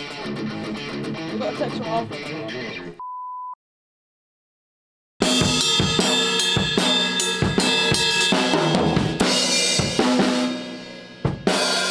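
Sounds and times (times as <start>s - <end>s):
drum kit playing: 5.2s - 11.9s.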